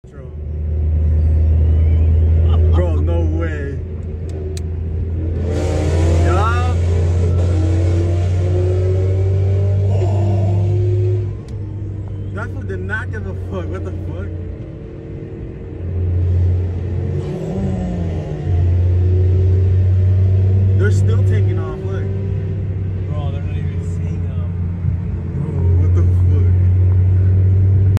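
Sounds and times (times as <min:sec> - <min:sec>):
car engine and road rumble: 0:00.0 - 0:28.0
voice: 0:06.2 - 0:06.8, 0:12.4 - 0:14.3, 0:20.8 - 0:22.1, 0:25.4 - 0:26.6.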